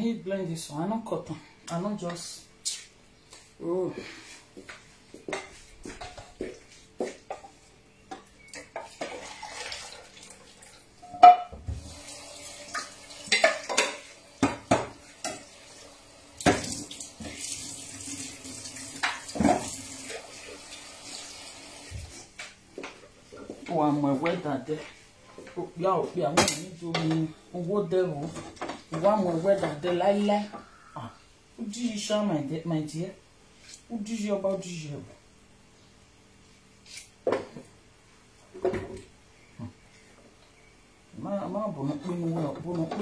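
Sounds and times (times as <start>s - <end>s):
pots and dishes clattering: 7.3s - 9.7s, 11.0s - 11.6s, 12.7s - 15.5s.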